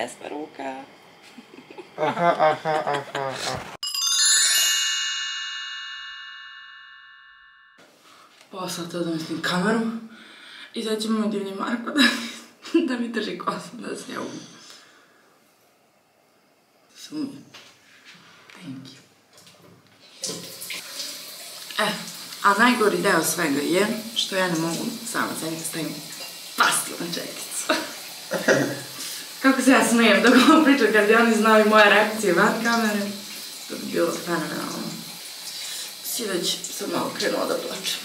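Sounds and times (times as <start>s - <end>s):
shimmering bell chime: 3.8s - 7.8s
tap water running into basin: 19.4s - 38.0s.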